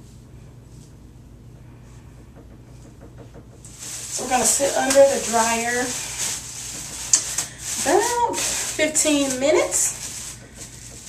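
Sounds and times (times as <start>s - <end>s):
low steady hum: 0.0s - 11.0s
comb rubbing through wet hair: 3.7s - 11.0s.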